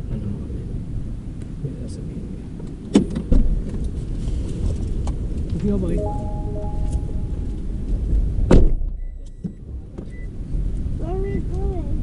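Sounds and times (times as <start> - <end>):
low rumble: 5.7 - 9.1.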